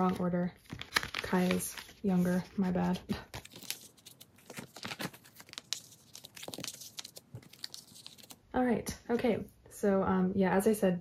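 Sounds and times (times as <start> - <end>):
plastic binder pockets crinkling: 0.0 - 8.4.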